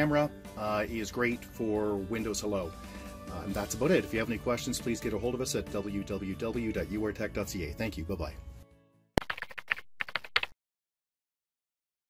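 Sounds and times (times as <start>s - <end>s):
keyboard typing clicks: 9.2s - 10.6s.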